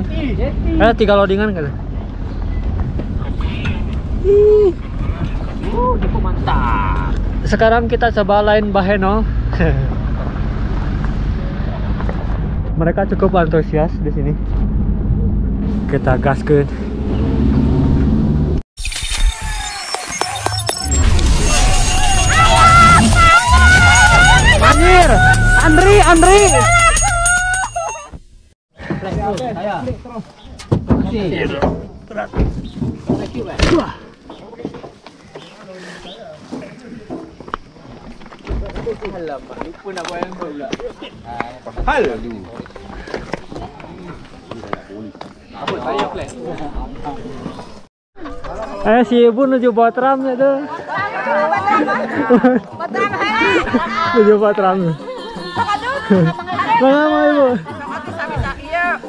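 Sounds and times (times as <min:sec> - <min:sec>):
people talking and calling out: 0:19.5 - 0:28.2, 0:33.2 - 0:59.0.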